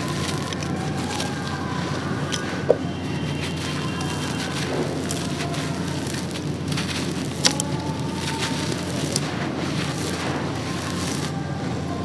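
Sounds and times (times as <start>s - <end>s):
concrete crumbling and crunching: 0.0s - 11.4s.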